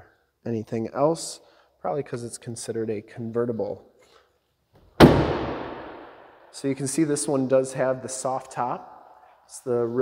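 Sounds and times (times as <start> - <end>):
car door slamming: 5.0 - 6.0.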